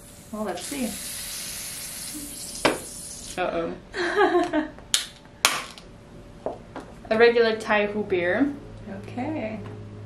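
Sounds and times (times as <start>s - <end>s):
gas hissing from can: 0.0s - 3.4s.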